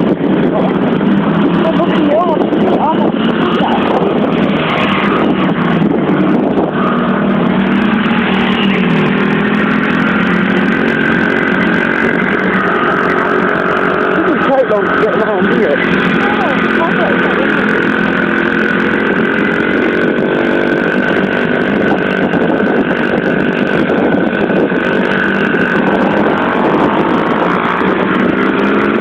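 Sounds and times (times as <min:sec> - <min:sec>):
rushing noise: 0:00.0 - 0:29.0
small motorbike engine running: 0:00.0 - 0:29.0.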